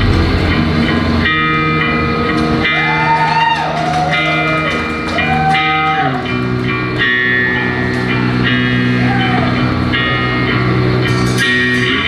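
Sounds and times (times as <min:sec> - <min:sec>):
distorted electric guitar: 0:00.0 - 0:12.0
punk band playing loud: 0:00.0 - 0:12.0.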